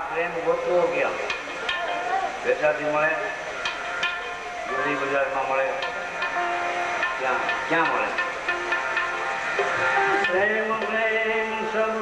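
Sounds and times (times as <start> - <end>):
harmonium holding notes: 0.0 - 12.0
hand percussion strikes: 1.1 - 11.7
man singing: 10.2 - 12.0.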